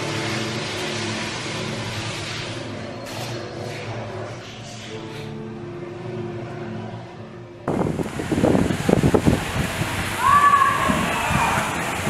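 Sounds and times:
rush of splashing water: 0.0 - 2.7, 7.7 - 12.0
faint background music: 0.0 - 8.0.

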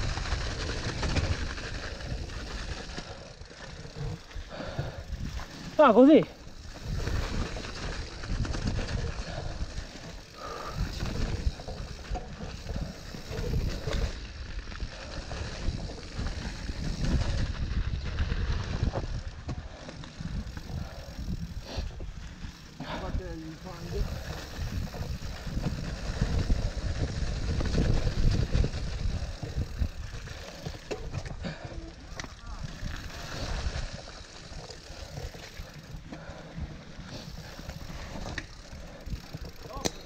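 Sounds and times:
mountain bike rattling over trail: 0.0 - 40.0
wind buffeting microphone: 3.8 - 5.7, 6.3 - 39.9.

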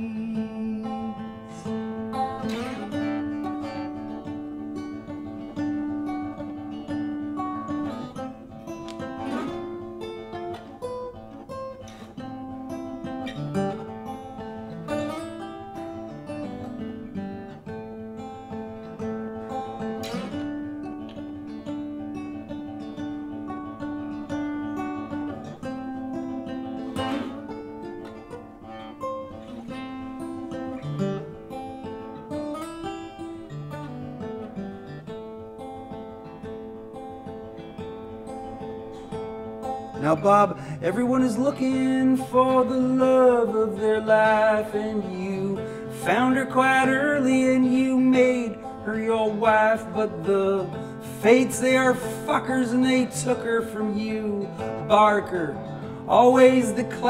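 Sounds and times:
acoustic guitar playing: 0.0 - 57.0.

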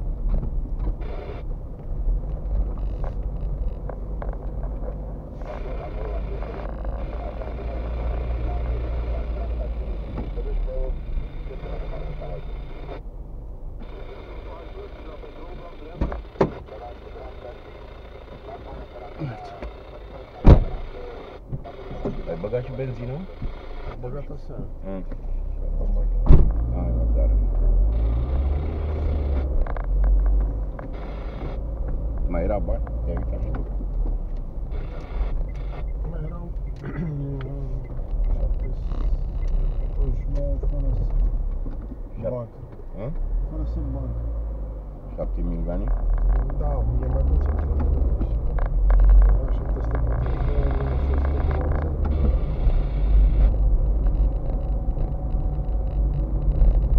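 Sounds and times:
car cabin rumble: 0.0 - 24.8, 25.7 - 56.9.

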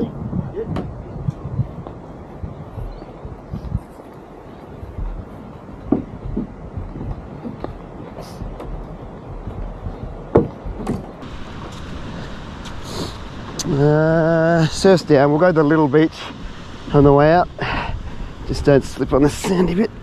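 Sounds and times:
hull and gear knocking and rattling: 4.9 - 11.9.

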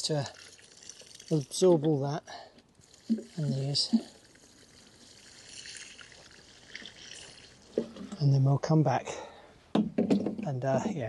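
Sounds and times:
water splashing from a hose: 0.0 - 2.2, 2.8 - 8.2.

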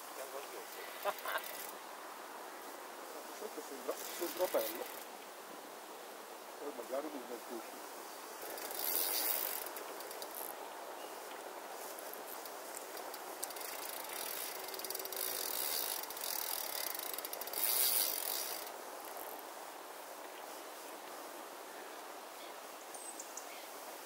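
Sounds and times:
fishing reel ratchet clicking: 1.0 - 1.7, 4.0 - 5.1, 8.4 - 10.5, 12.8 - 19.4.

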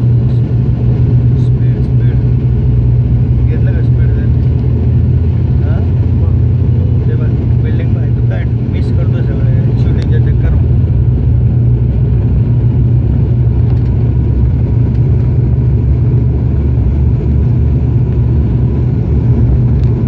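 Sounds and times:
propeller engines droning in cabin: 0.0 - 20.0.

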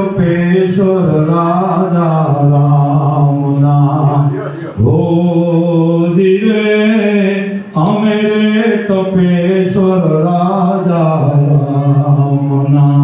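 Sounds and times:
man chanting into microphone: 0.0 - 13.0
man breathing: 4.3 - 4.8.

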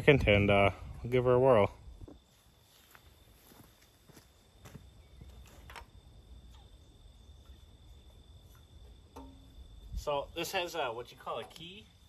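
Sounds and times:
footsteps on gravel: 2.2 - 5.7.

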